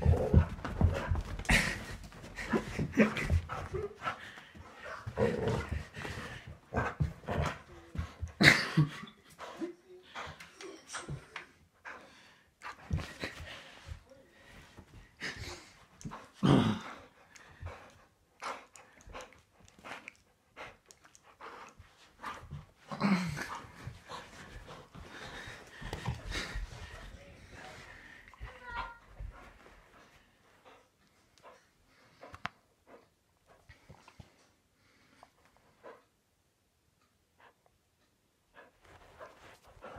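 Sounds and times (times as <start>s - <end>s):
dog growling while playing tug: 5.0s - 7.7s.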